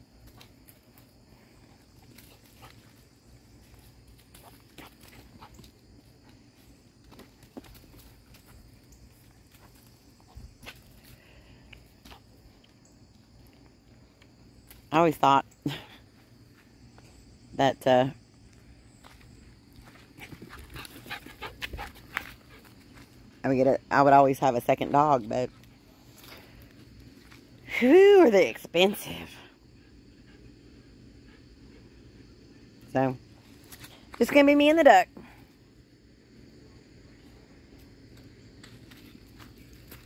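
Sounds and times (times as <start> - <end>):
dog scuffling on dirt and twigs: 0.1 - 11.2, 19.0 - 23.3
puppy panting: 20.2 - 22.8.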